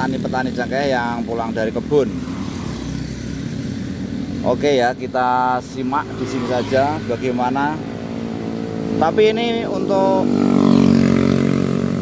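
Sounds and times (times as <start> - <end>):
motor scooters passing: 0.0 - 12.0.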